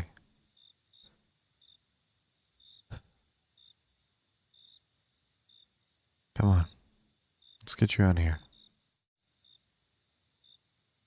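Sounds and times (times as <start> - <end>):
crickets chirping: 0.0 - 11.0
steady high cricket trill: 0.0 - 11.0.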